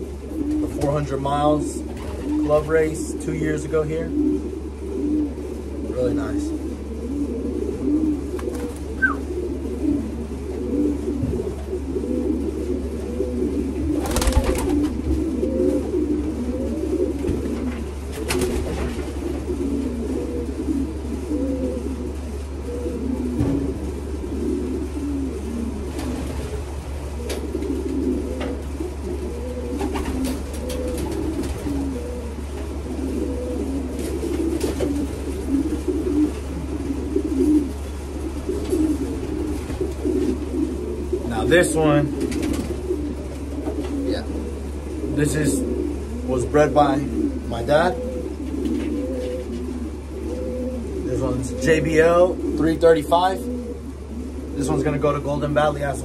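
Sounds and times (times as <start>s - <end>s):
pigeons cooing: 0.0s - 56.0s
steady low hum: 0.0s - 56.0s.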